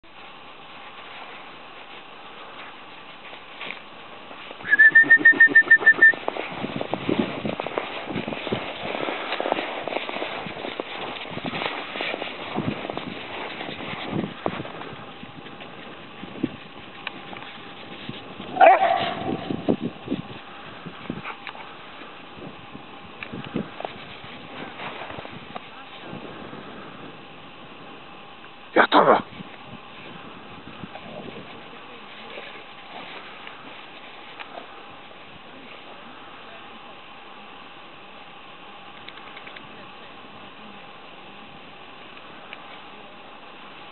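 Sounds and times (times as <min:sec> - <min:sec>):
dogs playing: 0:00.2 - 0:22.3, 0:29.3 - 0:35.9
trilling whistle: 0:04.6 - 0:06.2.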